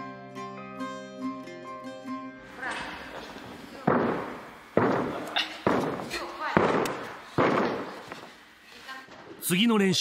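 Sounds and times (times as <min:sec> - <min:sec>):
feet landing on sprung floor: 0:03.9 - 0:08.3.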